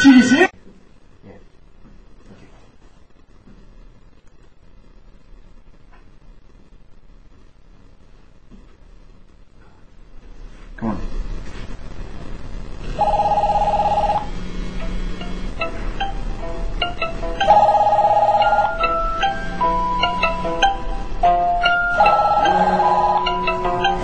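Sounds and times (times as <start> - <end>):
melodic ringtone: 13.0 - 14.3, 15.6 - 24.0
trilled phone ring: 13.0 - 14.3, 17.4 - 19.7, 21.7 - 24.0.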